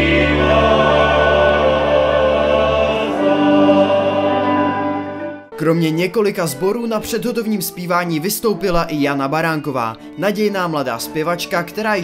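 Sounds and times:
men's choir singing folk song: 0:00.0 - 0:05.5.

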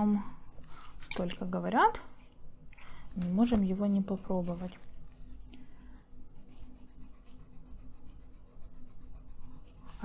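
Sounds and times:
pencil scratching on paper: 0:00.0 - 0:00.9, 0:06.3 - 0:10.0.

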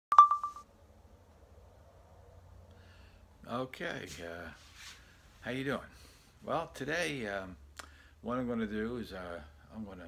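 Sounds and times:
faint low room hum: 0:00.2 - 0:10.0.

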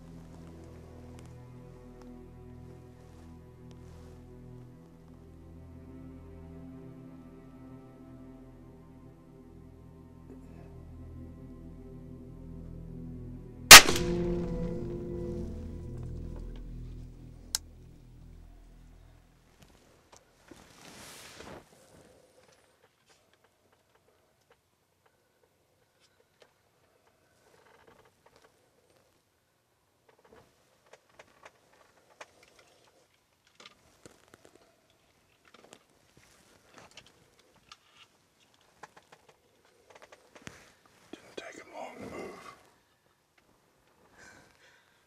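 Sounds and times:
soft background music: 0:00.0 - 0:20.0
revolver shot: 0:13.7 - 0:14.6.

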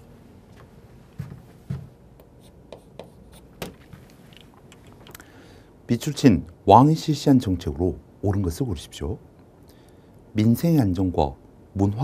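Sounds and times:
chalk tapping and scraping on chalkboard: 0:02.2 - 0:04.1.

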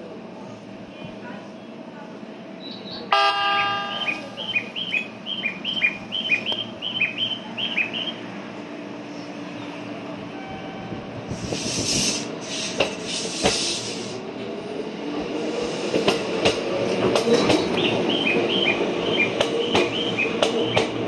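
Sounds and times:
electric train hum: 0:00.0 - 0:21.0
high two-note chirps: 0:03.2 - 0:04.9
train horn blast: 0:10.3 - 0:11.1.

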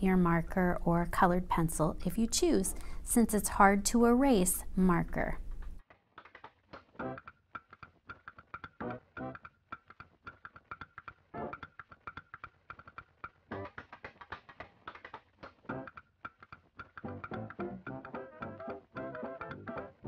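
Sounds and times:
plucked string music: 0:06.4 - 0:20.0.

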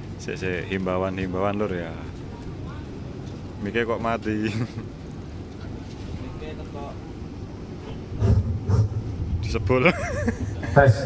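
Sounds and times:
outdoor background noise: 0:00.0 - 0:11.0
loud deep booms: 0:08.2 - 0:09.9.

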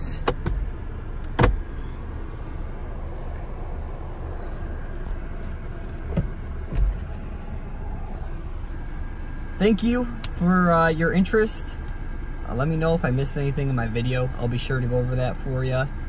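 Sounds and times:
low hum in car cabin: 0:00.0 - 0:16.0
glove box lid clicking shut: 0:01.2 - 0:01.6
soft thumps: 0:05.9 - 0:07.3.

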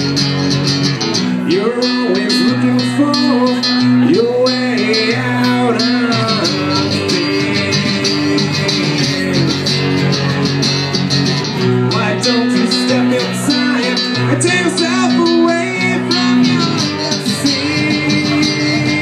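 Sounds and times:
acoustic guitar strumming: 0:00.0 - 0:19.0
sliding guitar lead line: 0:00.0 - 0:19.0.

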